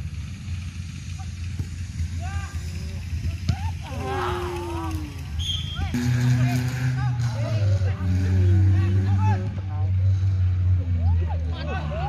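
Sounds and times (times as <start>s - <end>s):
engine running: 0.0s - 12.0s
people shouting: 3.4s - 5.9s.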